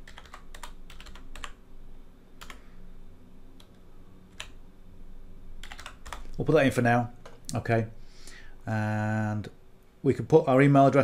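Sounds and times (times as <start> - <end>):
typing on computer keyboard: 0.0 - 1.6, 2.4 - 2.6, 5.6 - 6.4.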